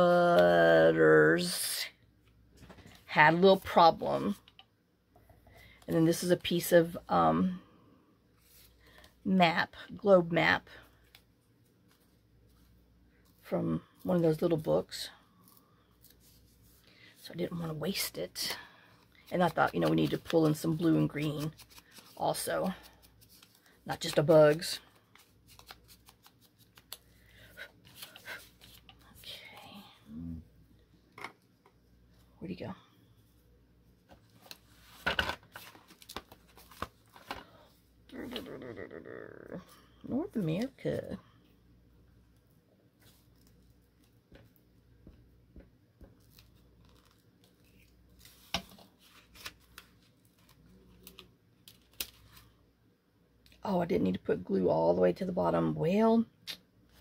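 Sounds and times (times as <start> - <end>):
paper rustling: 19.3 - 29.0, 34.2 - 37.5
low hum of a voice: 29.0 - 30.5, 38.1 - 41.2.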